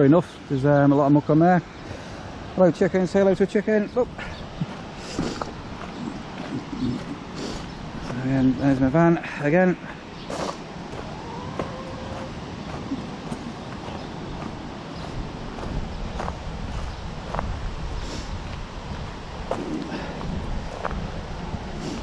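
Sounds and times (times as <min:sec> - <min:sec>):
wind buffeting microphone: 0:01.8 - 0:22.0.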